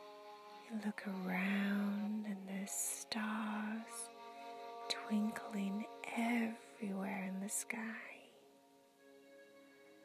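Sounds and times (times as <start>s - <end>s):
ambient background music: 0.0s - 10.0s
woman whispering softly: 0.7s - 4.1s, 4.9s - 8.4s.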